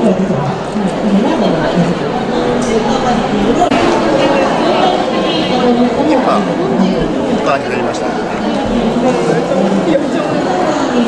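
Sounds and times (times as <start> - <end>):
crowd chatter indoors: 0.0 - 11.0.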